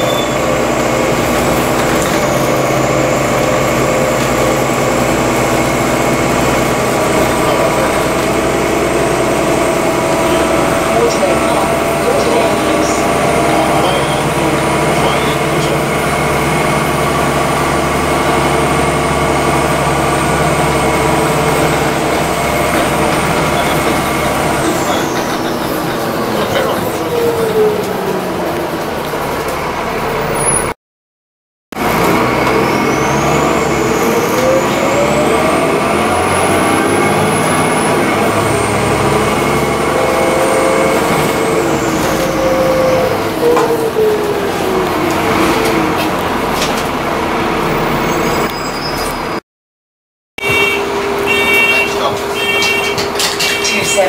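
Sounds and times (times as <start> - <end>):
bus engine drone: 0.0 - 30.8, 31.7 - 49.4, 50.4 - 54.0
high drivetrain whine: 0.0 - 30.8, 31.7 - 49.4, 50.4 - 54.0.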